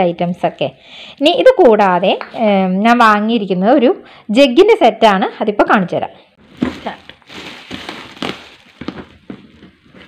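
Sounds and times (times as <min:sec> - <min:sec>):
plastic packaging crinkling: 0:06.4 - 0:10.0
cardboard box being handled: 0:06.5 - 0:10.0.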